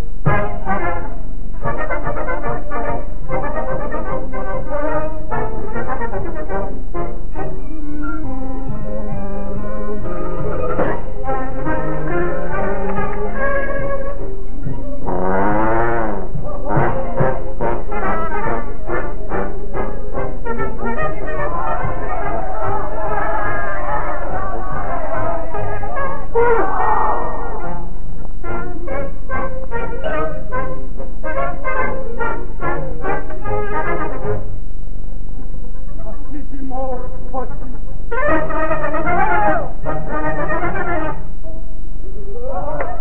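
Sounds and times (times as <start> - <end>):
dance band playing: 8.7 - 34.4
trombone sliding phrase: 9.5 - 28.0.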